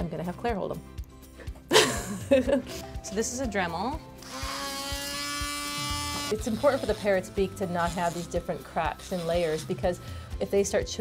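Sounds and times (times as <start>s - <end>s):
rotary tool whining: 4.2s - 7.1s.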